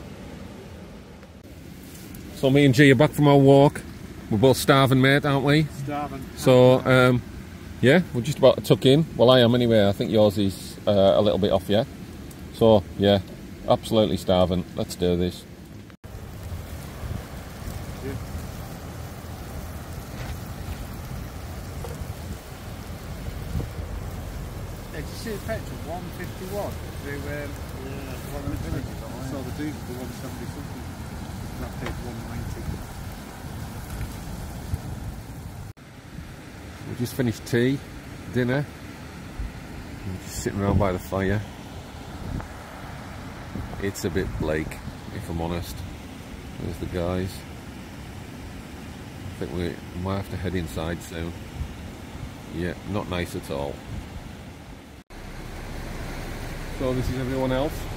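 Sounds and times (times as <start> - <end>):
wind on microphone: 16.1 - 29.1, 29.7 - 35.7, 42.1 - 42.6, 43.2 - 45.1.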